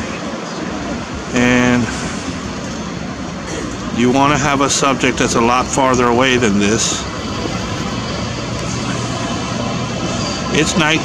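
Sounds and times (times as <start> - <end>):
city traffic: 0.0 - 11.0.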